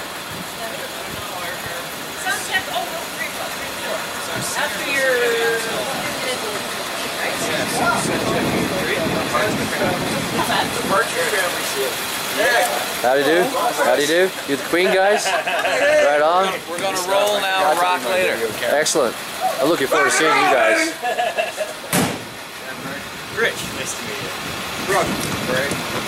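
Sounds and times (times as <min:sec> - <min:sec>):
people talking: 0:00.5 - 0:21.9, 0:22.6 - 0:25.8.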